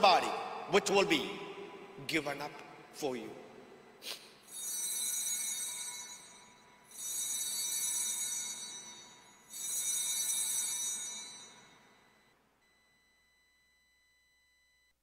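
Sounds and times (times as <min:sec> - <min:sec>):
altar bells ringing: 0:04.4 - 0:12.2.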